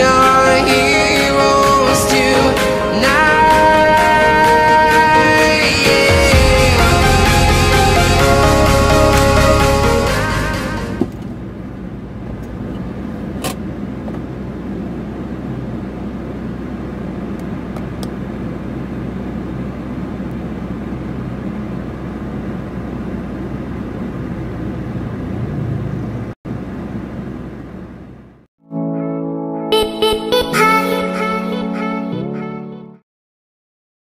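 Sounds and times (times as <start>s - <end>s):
traffic passing outside: 10.7s - 28.5s
car interior hum and road noise: 10.8s - 28.4s.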